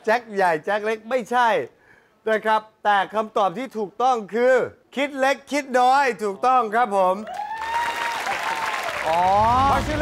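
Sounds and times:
studio audience applauding: 7.2s - 10.0s.

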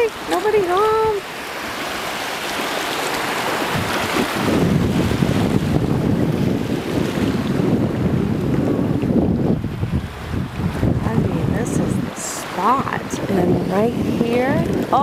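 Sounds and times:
small waves washing on beach: 0.0s - 15.0s
wind buffeting microphone: 0.0s - 15.0s.

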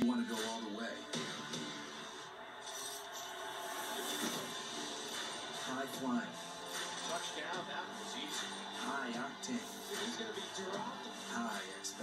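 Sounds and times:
noisy rush from tv speaker: 0.0s - 12.0s.

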